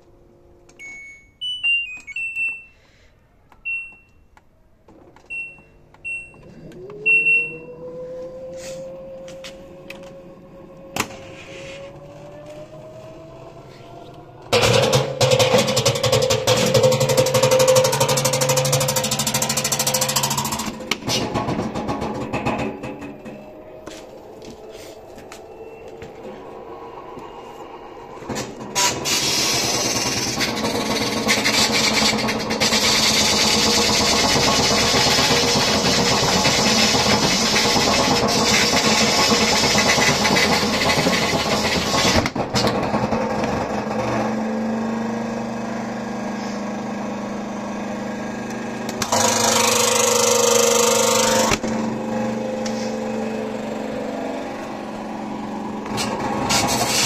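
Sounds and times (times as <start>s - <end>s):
hum: 6.0s - 32.8s
washing machine drum spinning: 14.5s - 23.8s, 28.2s - 44.9s.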